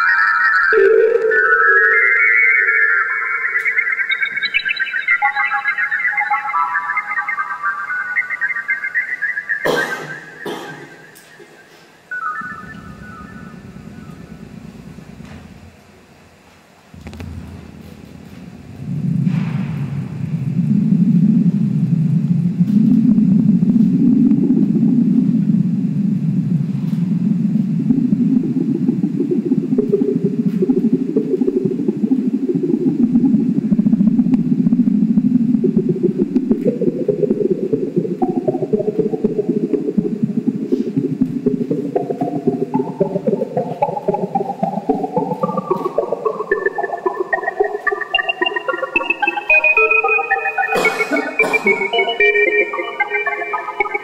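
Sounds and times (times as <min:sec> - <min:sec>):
low rumbling electronic drone: 0:00.0 - 0:08.7, 0:12.1 - 0:54.0
climbing electronic notes: 0:00.0 - 0:25.6, 0:26.2 - 0:54.0.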